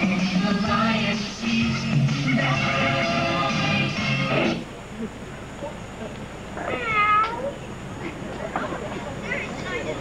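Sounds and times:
drawn-out meow-like call: 6.6s - 7.6s.

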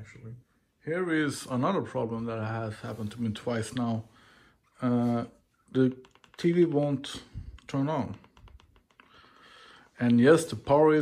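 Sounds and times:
remote control buttons clicking: 5.8s - 9.1s.

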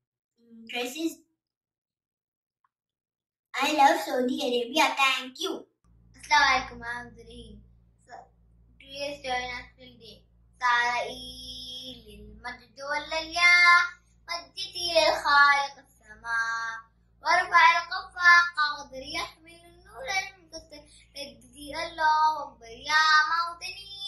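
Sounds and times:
young boy singing: 21.6s - 24.0s.

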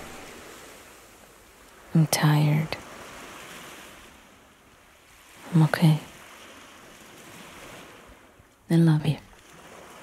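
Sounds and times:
waves washing on shore: 0.0s - 10.0s.

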